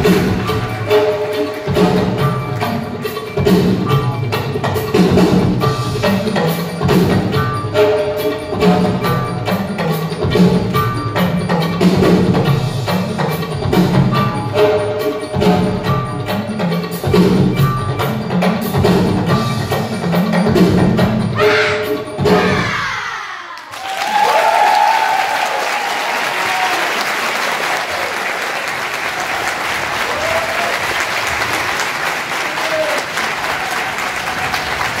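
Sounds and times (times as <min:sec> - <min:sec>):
percussive dance music: 0:00.0 - 0:23.2
audience applause: 0:23.6 - 0:35.0.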